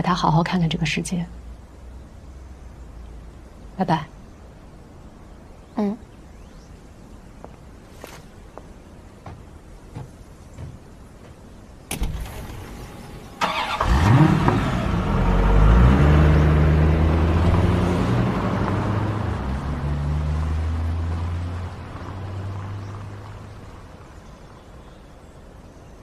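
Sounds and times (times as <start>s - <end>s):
van engine starting and running: 11.9s - 21.8s.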